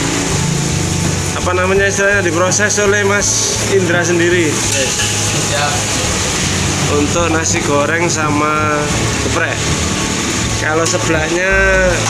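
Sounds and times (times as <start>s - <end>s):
low hum: 0.0s - 2.4s, 5.8s - 12.0s
gas burner rushing: 0.0s - 12.0s.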